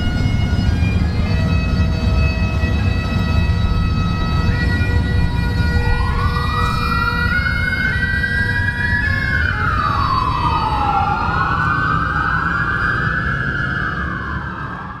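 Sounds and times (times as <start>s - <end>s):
faint bagpipes: 0.0s - 10.4s
police siren wailing: 0.0s - 15.0s.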